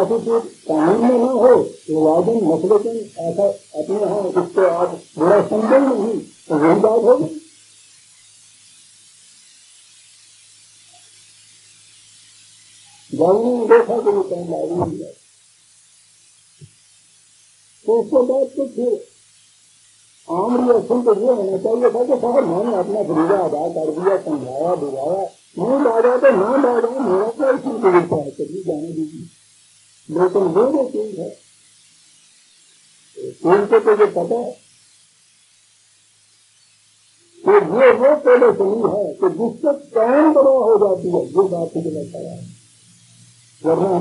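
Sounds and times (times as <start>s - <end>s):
man speaking: 0.0s - 7.4s, 13.1s - 15.2s, 17.8s - 19.0s, 20.3s - 29.3s, 30.1s - 31.4s, 33.2s - 34.6s, 37.4s - 42.6s, 43.6s - 44.0s
faint steady hiss: 0.0s - 44.0s.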